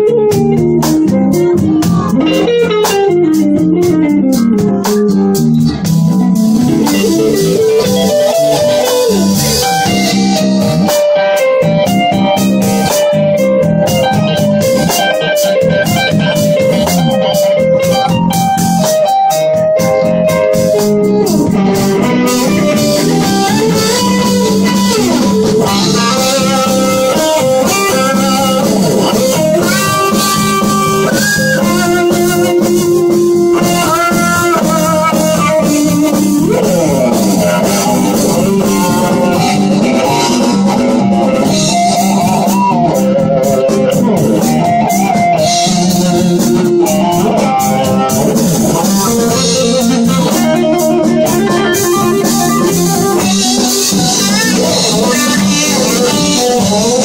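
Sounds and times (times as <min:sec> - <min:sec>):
bass guitar: 0:00.0 - 0:57.0
drums: 0:00.0 - 0:57.0
electric guitar lead solo: 0:00.0 - 0:57.0.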